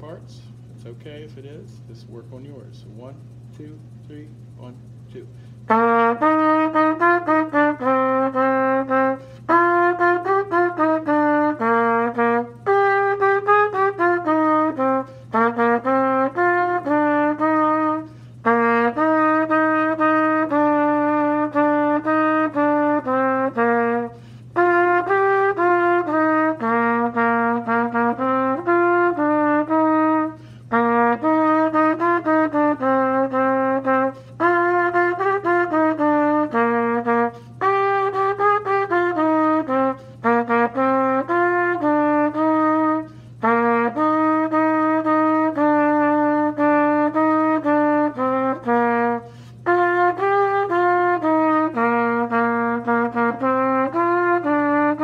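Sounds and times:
faint low hum: 0.0 - 55.0
trumpet playing slow melody: 3.8 - 55.0
breaths: 5.4 - 5.6, 9.2 - 9.4, 18.1 - 18.4, 24.2 - 24.5, 30.4 - 30.7, 43.1 - 43.4, 49.2 - 49.6.

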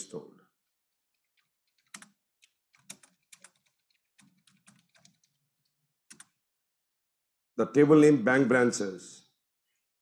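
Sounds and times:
keyboard keystrokes: 1.7 - 5.4, 6.1 - 6.4.

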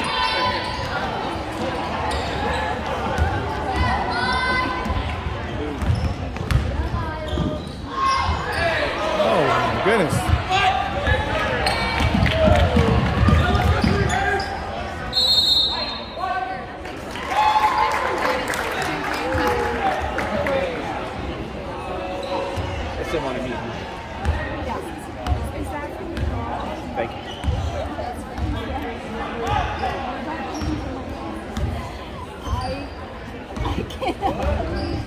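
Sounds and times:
sneakers squeaking: 0.0 - 9.1, 10.2 - 16.2, 22.1 - 22.8, 26.1 - 35.0
spectators talking: 0.0 - 35.0.

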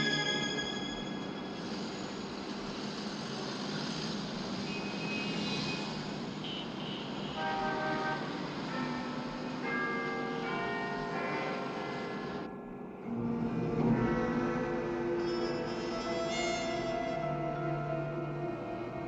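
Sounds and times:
clock tower bells chiming: 0.0 - 1.6, 7.4 - 19.0
steady background noise: 0.0 - 19.0.

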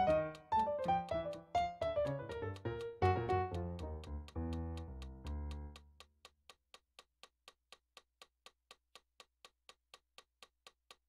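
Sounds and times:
electronic keyboard notes: 0.0 - 5.8
metronome clicks: 0.0 - 6.6.

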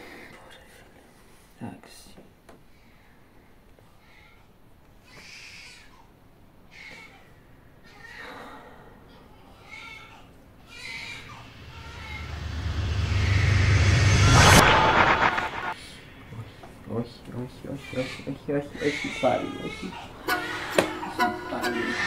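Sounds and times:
horror soundtrack riser: 11.1 - 16.0.

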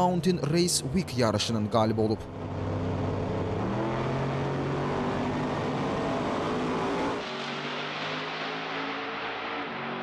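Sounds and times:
truck engine at high revs: 2.3 - 10.0.

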